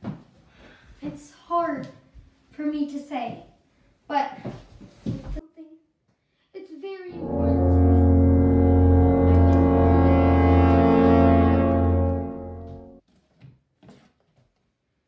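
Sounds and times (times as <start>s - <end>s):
deep horn-like blast: 7.1s - 13.0s.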